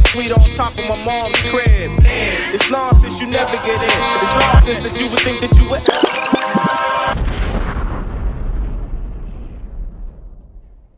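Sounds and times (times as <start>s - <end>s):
rap music: 0.0s - 7.0s.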